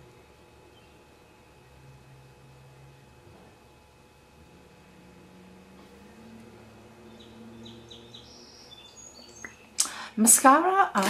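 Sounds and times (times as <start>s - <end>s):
faint birds chirping: 0.0s - 3.6s, 4.5s - 10.4s.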